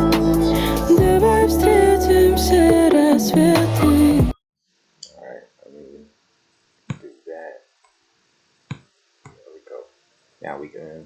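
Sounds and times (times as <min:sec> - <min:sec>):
pop song through computer speakers: 0:00.0 - 0:04.4.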